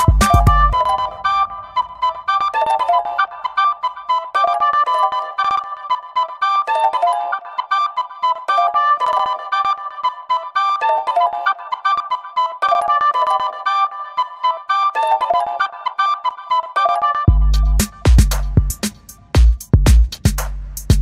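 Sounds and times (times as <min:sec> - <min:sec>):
light music with high notes: 0:00.0 - 0:21.0.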